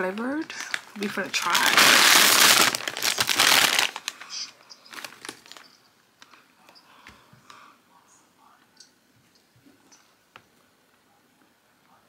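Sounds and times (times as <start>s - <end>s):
foil chip bag crinkling: 0.0s - 5.7s.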